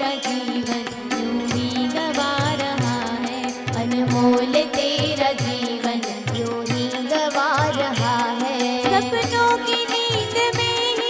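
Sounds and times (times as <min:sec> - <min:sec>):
tabla playing a steady beat: 0:00.0 - 0:11.0.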